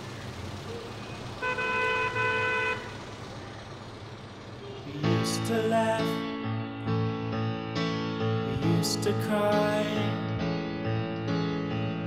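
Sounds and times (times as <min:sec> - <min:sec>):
road traffic noise: 0:00.0 - 0:12.0
car horn toots: 0:01.2 - 0:03.0.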